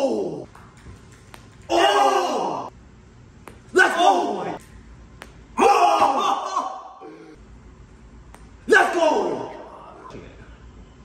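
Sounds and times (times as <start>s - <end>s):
men shouting excitedly: 3.7s - 4.6s.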